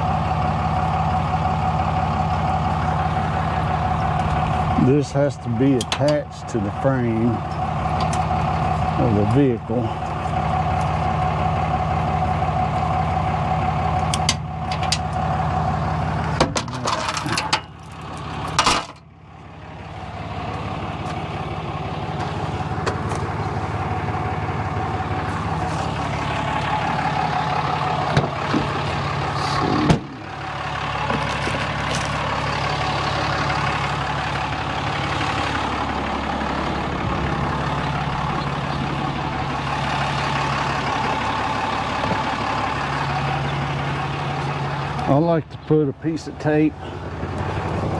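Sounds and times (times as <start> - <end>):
truck engine idling: 0.0 - 47.9
clicks and metal rattles: 14.1 - 15.2, 16.4 - 19.0.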